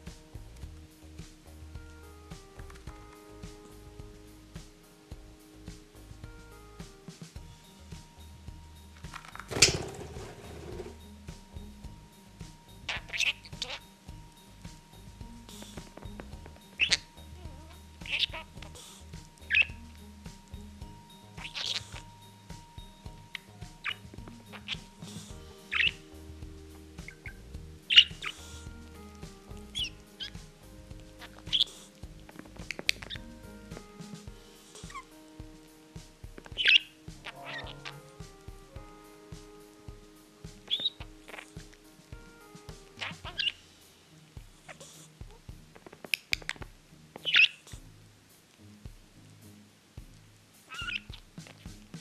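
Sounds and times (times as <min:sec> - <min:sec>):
soft background music: 0:00.0 - 0:52.0
budgerigar chirping: 0:12.8 - 0:14.0, 0:16.6 - 0:20.1, 0:20.9 - 0:26.1, 0:27.0 - 0:33.8, 0:34.8 - 0:35.2, 0:36.4 - 0:38.1, 0:40.6 - 0:41.7, 0:43.0 - 0:43.6, 0:45.8 - 0:47.8, 0:50.7 - 0:51.7.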